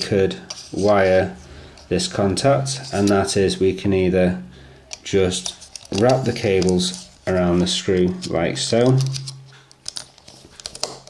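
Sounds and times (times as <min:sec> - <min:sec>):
screwdriver clicks and scratches: 0:04.9 - 0:07.1.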